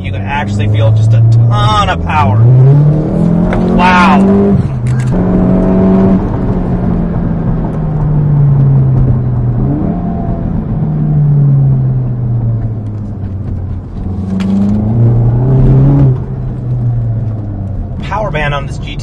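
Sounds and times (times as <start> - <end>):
car engine from inside cabin: 0.0 - 19.0.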